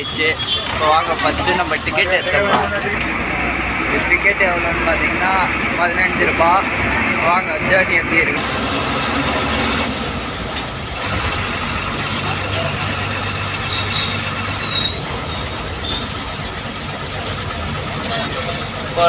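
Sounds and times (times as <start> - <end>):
bus engine hum: 0.0 - 19.0
road noise: 0.0 - 19.0
high squeaks: 12.2 - 16.2.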